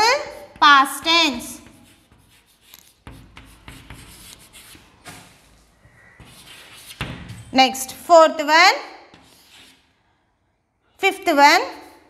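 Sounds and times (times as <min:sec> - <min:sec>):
chalk scratching on chalkboard: 0:01.4 - 0:05.0, 0:06.0 - 0:07.2, 0:09.1 - 0:09.9.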